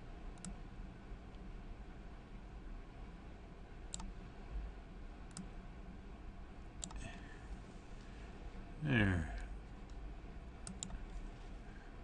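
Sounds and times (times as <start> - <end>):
faint low hum: 0.0 - 12.0
computer mouse button clicking: 10.6 - 11.0.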